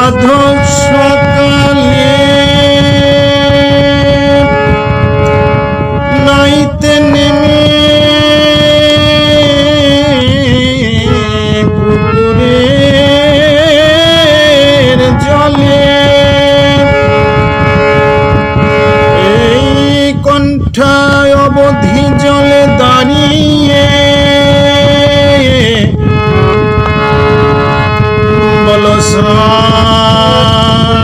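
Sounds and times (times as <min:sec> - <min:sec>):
harmonium chord: 0:00.0 - 0:31.0
low rumbling noise: 0:00.0 - 0:31.0.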